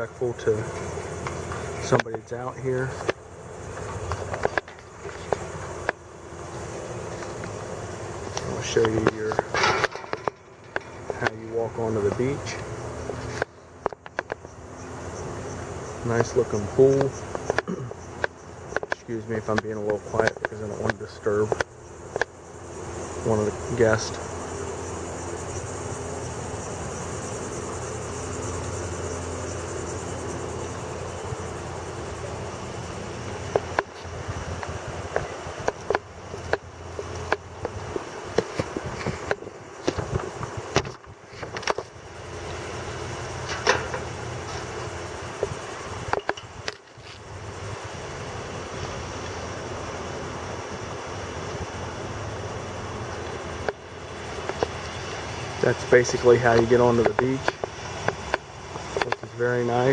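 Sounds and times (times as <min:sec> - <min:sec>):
low mechanical hum: 0:00.0 - 0:59.9.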